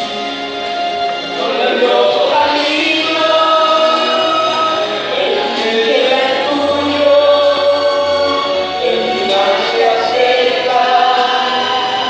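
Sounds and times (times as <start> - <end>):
women's choir singing: 1.3 - 12.0.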